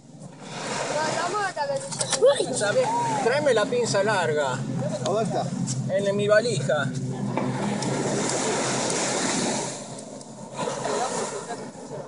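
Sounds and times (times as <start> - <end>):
surf washing on beach: 0.0 - 6.2, 7.1 - 12.0.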